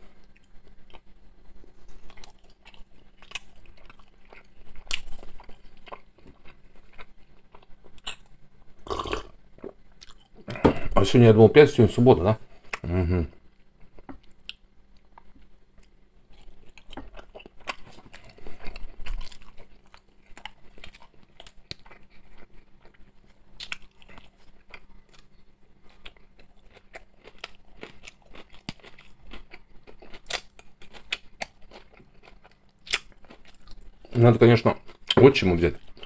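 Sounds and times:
person chewing food: 0.0s - 10.9s, 12.5s - 36.0s.

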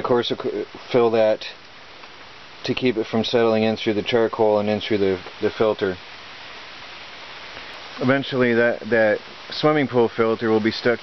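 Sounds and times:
light rain falling: 0.0s - 11.0s.

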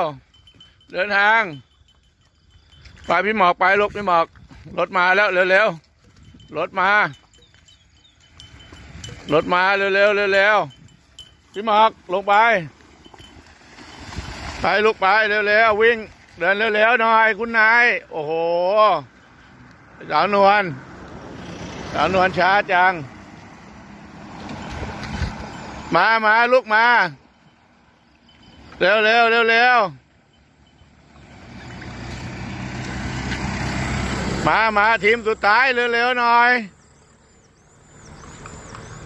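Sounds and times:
small bells tinkling: 0.0s - 20.7s, 23.9s - 33.4s
pickup truck driving by: 8.3s - 39.0s.

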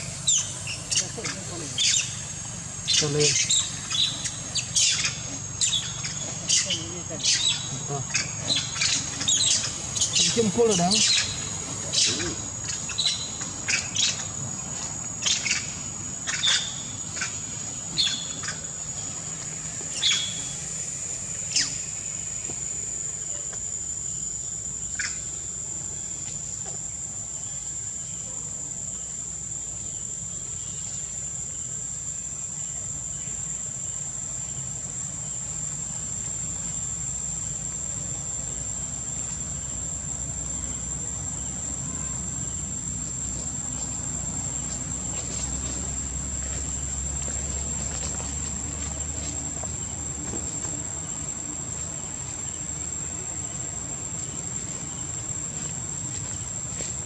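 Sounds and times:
high-pitched insect drone: 0.0s - 57.0s.

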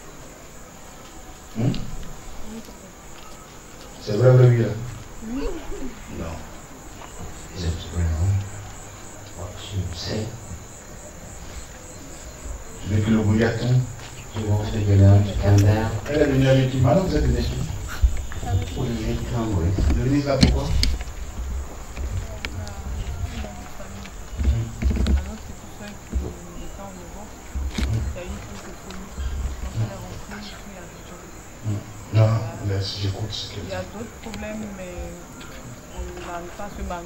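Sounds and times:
crickets chirring: 0.0s - 37.0s
faint voices: 0.0s - 37.0s.

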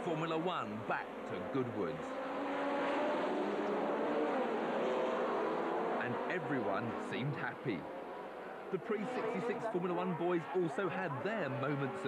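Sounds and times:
racing car engines revving: 0.0s - 12.0s.

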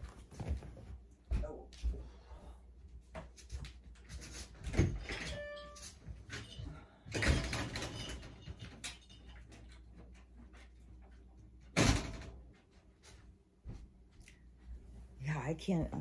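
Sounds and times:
door opening and shutting: 4.4s - 9.1s, 11.7s - 12.4s.

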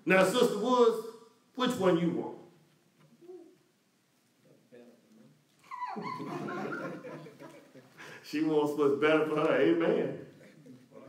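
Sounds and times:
people laughing: 5.6s - 8.2s, 10.2s - 11.0s.

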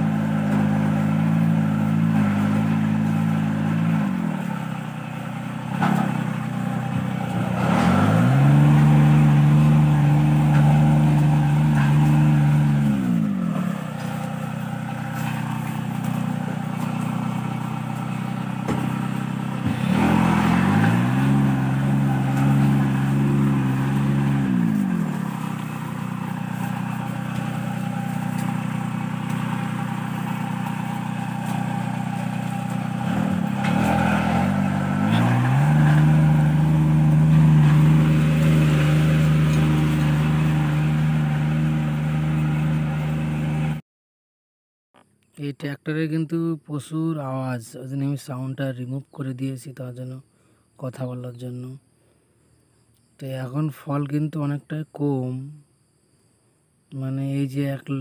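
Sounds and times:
small engine running and revving: 0.0s - 43.8s.

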